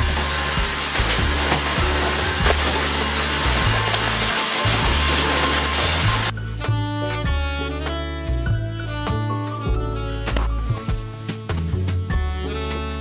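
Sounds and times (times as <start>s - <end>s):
vacuum cleaner running: 0.0s - 6.3s
music with repeating bass line: 5.9s - 13.0s.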